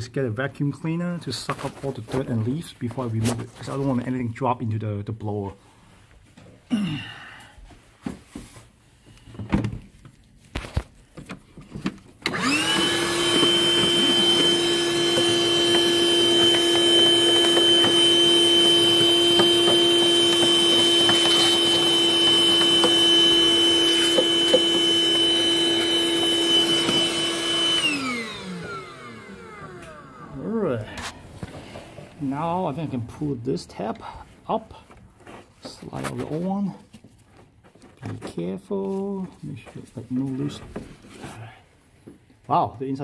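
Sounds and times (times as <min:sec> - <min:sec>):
vacuum cleaner running: 0:12.2 - 0:32.1.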